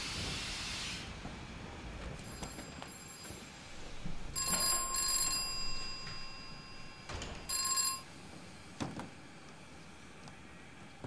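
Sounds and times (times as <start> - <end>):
bell ringing: 2.3 - 8.2.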